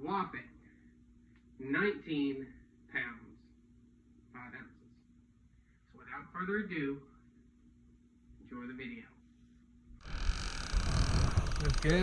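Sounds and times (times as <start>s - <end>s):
steady rushing with deep rumble: 10.7s - 12.0s.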